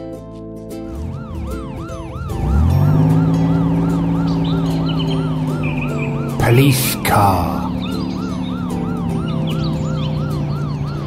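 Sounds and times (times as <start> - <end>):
low engine hum: 0.8 - 11.0
cartoon police siren yelping: 1.3 - 11.0.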